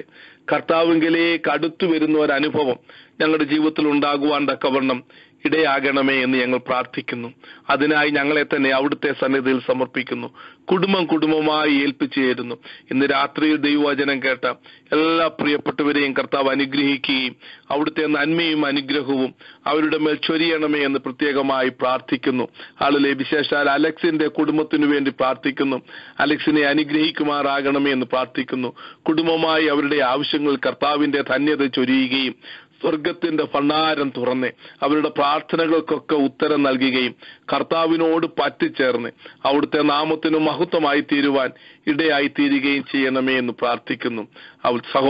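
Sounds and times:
man praying over telephone: 0.0 - 45.0.

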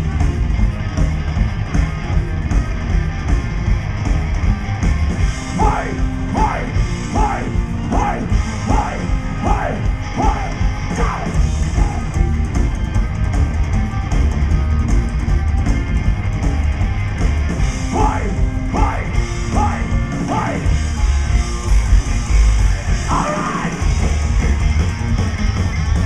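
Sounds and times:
loud live rock band: 0.0 - 26.0.

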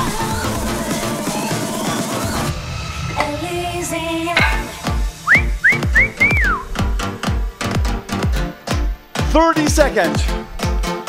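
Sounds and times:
electronic workout music: 4.4 - 11.0
whistle-like melody: 5.2 - 6.8.

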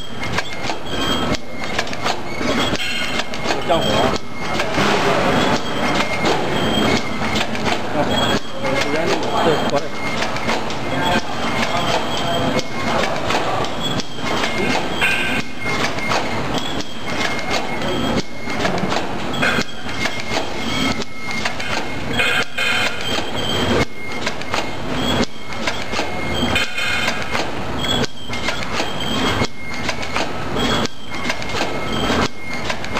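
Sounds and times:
packing machine clattering: 0.0 - 32.9.

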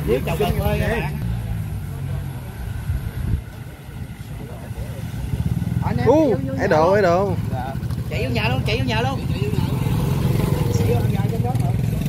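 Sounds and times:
motorcycle approaching: 0.0 - 12.0
small motorcycle engines running: 0.0 - 12.0.

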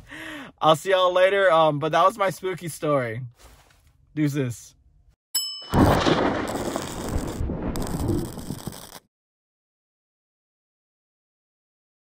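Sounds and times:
bell-like ding: 5.4 - 5.8
loud noisy crash effect: 5.7 - 8.8.

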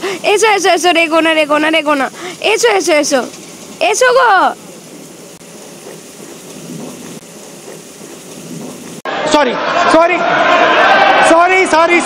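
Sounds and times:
steady rain falling: 0.0 - 9.1.

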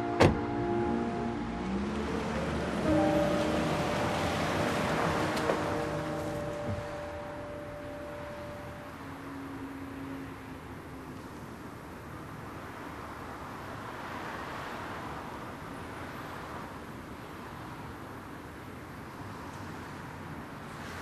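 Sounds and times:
soft background music: 0.0 - 9.8
car pulling away: 0.0 - 10.5
car door shutting: 0.1 - 0.7.

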